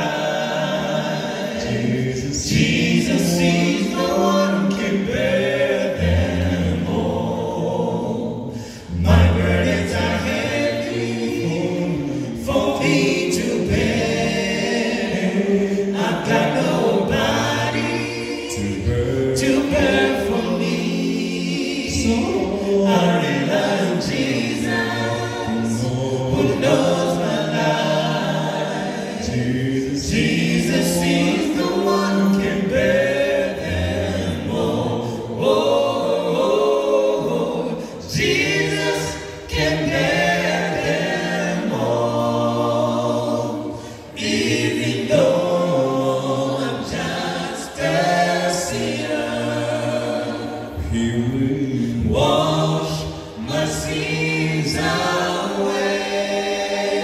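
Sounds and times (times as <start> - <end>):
male vocal group singing in harmony: 0.0 - 57.0.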